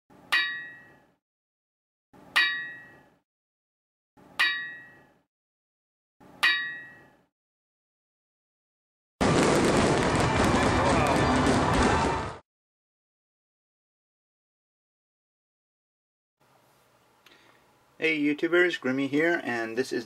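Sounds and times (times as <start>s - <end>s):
ringing metallic clangs: 0.3s - 1.1s, 2.3s - 3.2s, 4.4s - 5.2s, 6.4s - 7.2s.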